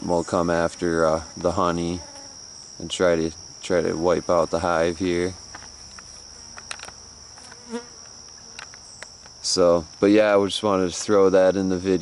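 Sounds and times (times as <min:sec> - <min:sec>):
insects trilling: 0:00.0 - 0:12.0.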